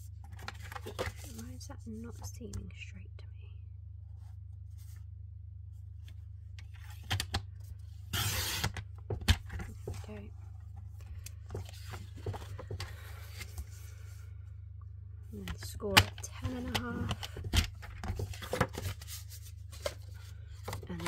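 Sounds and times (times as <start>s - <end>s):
steady low hum: 0.0s - 21.0s
paper trimmer blade slicing card: 8.1s - 8.8s.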